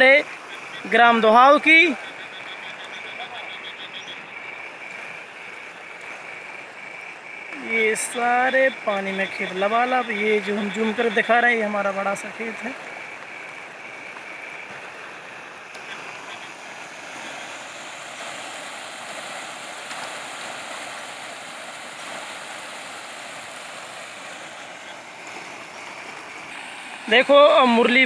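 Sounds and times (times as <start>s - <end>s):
floodwater rushing: 0.0s - 28.0s.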